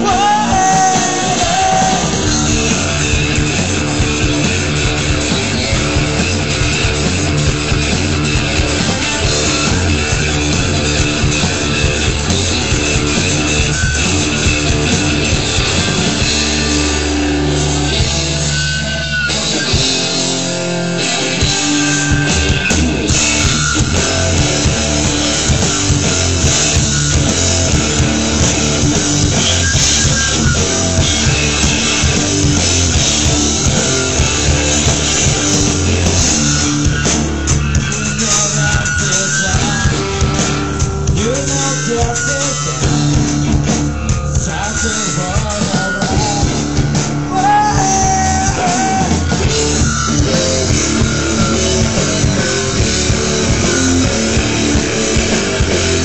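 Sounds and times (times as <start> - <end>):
bass guitar: 0.0 - 56.0
drum kit: 0.0 - 56.0
electric guitar: 0.0 - 56.0.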